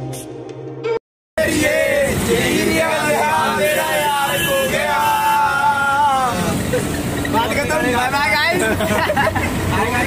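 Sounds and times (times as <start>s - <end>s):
bus engine rumble: 0.0s - 10.0s
young men laughing and calling out: 4.9s - 10.0s.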